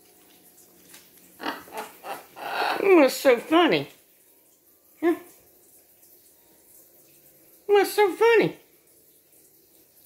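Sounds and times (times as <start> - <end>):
macaw raspy calls: 1.4 - 3.0
parrot speech-like sounds: 1.4 - 3.9, 5.0 - 5.3.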